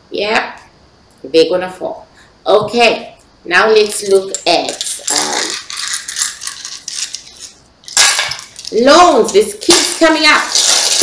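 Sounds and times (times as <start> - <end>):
small hard pieces clattering: 4.0 - 11.0.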